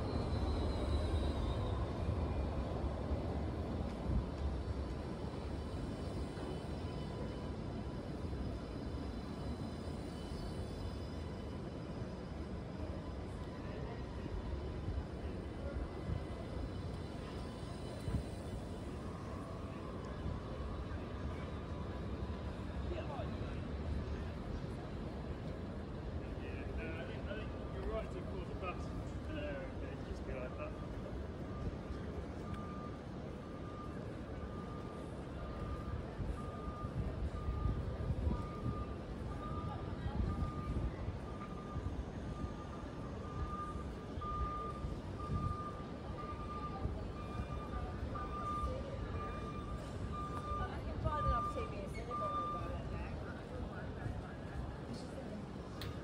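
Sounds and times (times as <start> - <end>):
busy city street rumble: 0.0 - 56.0
tram humming and whining: 0.0 - 56.0.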